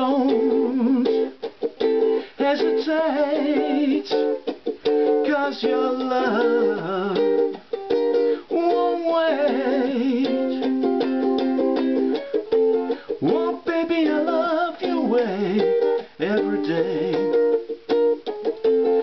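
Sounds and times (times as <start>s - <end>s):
man singing: 0.0s - 1.4s, 2.0s - 7.6s, 8.2s - 12.0s, 12.9s - 17.8s
ukulele strumming: 0.0s - 19.0s.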